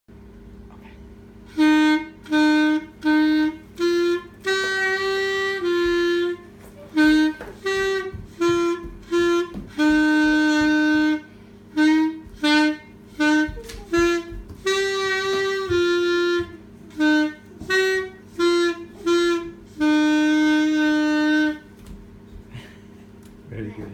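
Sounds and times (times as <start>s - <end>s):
clarinet playing a tune: 1.5s - 21.7s.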